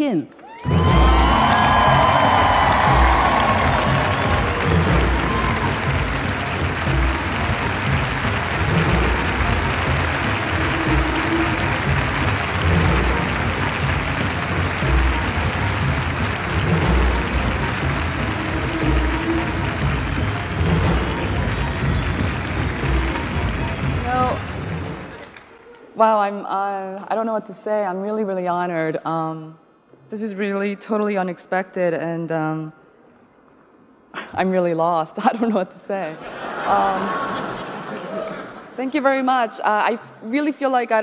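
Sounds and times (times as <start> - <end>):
audience applauding: 0.4 - 26.0, 36.3 - 38.8.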